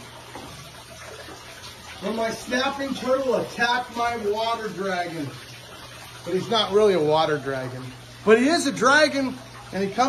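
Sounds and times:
running water: 0.0s - 10.0s.

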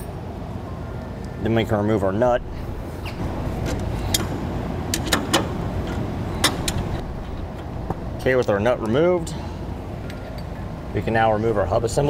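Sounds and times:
low rumble: 2.2s - 4.9s, 5.6s - 10.0s, 10.8s - 12.0s.

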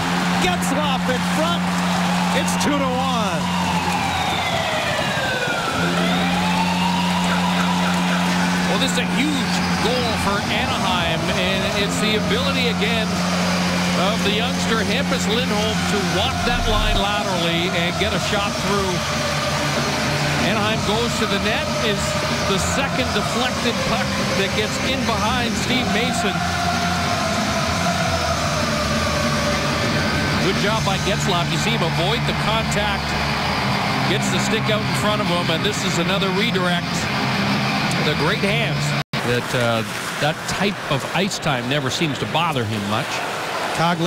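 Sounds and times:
goal siren wailing: 0.0s - 37.9s
crowd cheering: 0.0s - 44.0s.

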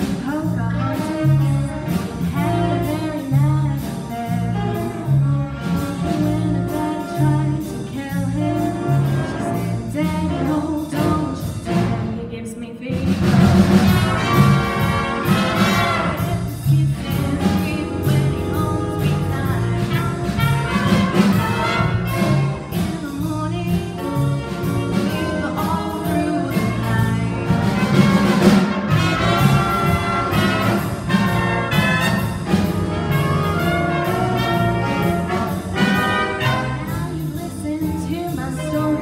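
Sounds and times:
brass band playing: 0.0s - 12.4s, 13.0s - 39.0s.

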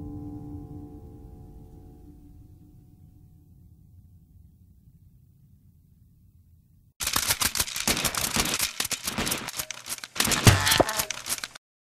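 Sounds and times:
dense irregular crackling: 7.0s - 11.6s.

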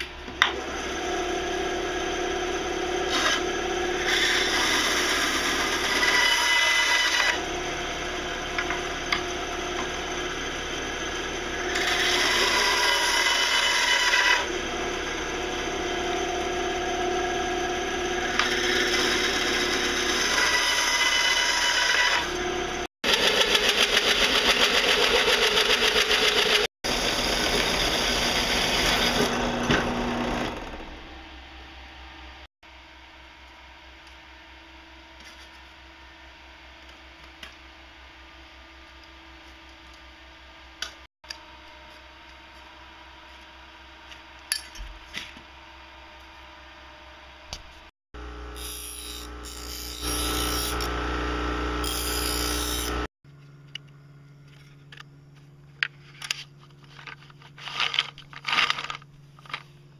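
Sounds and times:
band saw cutting pipe: 0.0s - 31.2s, 48.2s - 53.1s.

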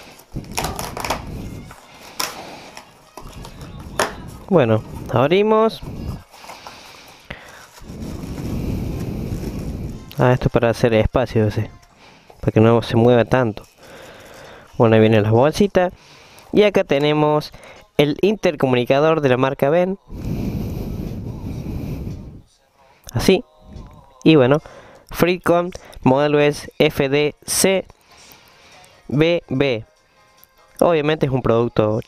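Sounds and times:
cardboard and plastic rustling: 0.0s - 10.4s.

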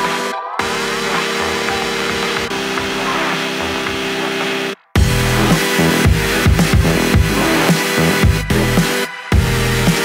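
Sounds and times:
electronic synth music: 0.0s - 10.0s.

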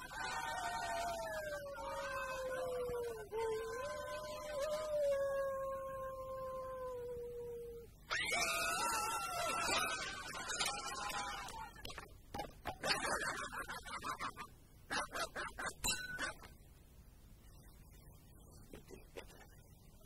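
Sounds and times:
dog howling: 0.0s - 10.0s.

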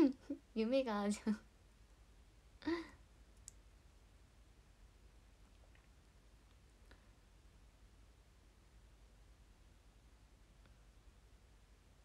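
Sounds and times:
woman laughing softly: 2.6s - 3.0s
faint click: 3.4s - 3.6s.

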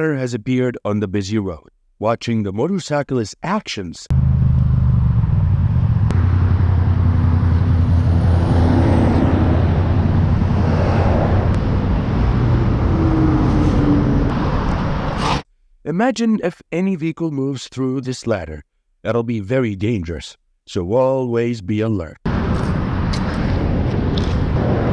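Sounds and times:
motorcycle engine running: 4.1s - 8.8s
road and wind noise: 4.1s - 15.4s, 22.3s - 24.9s.

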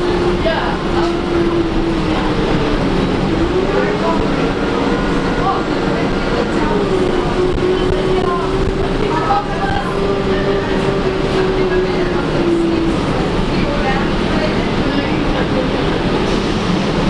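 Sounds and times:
bus drivetrain whine: 0.0s - 17.0s
low road rumble: 0.0s - 17.0s.

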